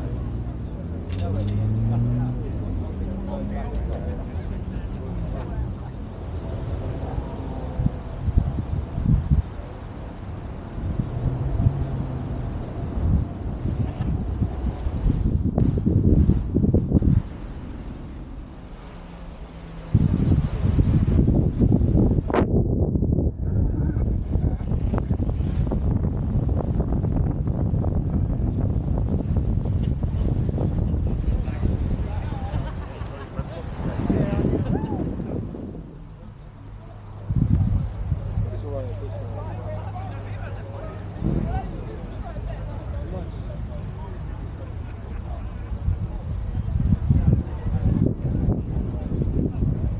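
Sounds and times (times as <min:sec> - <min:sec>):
people talking: 0:00.0 - 0:10.3, 0:23.3 - 0:25.4, 0:29.7 - 0:49.9
wind buffeting microphone: 0:00.0 - 0:49.9.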